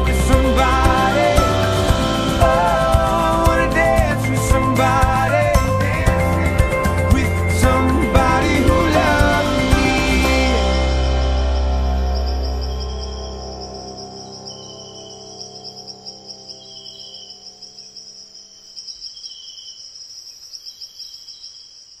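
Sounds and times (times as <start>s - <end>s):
song's last chord ringing: 0.0s - 15.4s
insects trilling: 10.4s - 22.0s
lower insect chirp: 10.4s - 22.0s.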